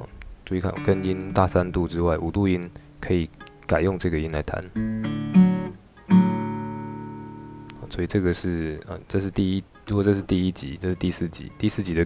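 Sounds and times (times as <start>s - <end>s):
acoustic guitar chord: 2.7s - 3.1s, 4.8s - 7.8s.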